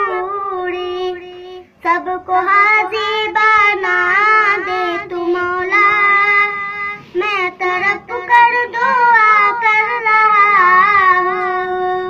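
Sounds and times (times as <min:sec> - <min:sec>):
boy singing solo: 0:00.0 - 0:12.0.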